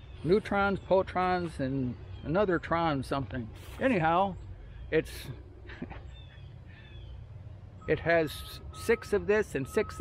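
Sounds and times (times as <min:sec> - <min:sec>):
bird calling faintly: 0:03.5 - 0:10.0.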